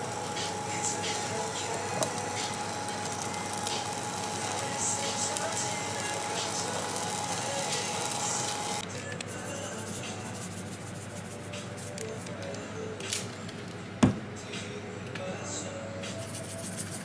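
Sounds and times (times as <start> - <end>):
potatoes sizzling in oil: 0.0 - 8.8.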